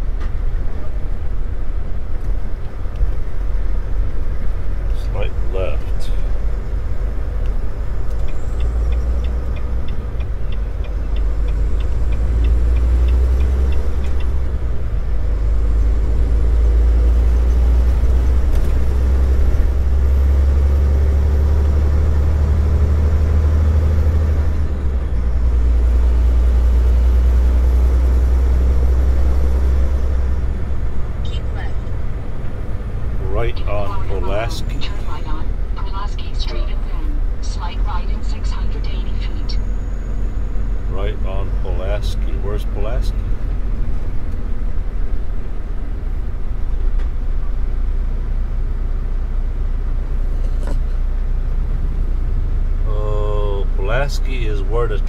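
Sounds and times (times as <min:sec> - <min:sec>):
truck engine drone and road noise: 0:00.0 - 0:55.0
light ticks: 0:07.4 - 0:14.3.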